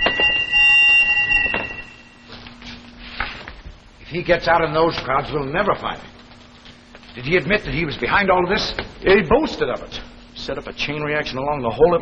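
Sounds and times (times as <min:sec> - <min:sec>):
alarm buzzer high tone: 0:00.0 - 0:02.3.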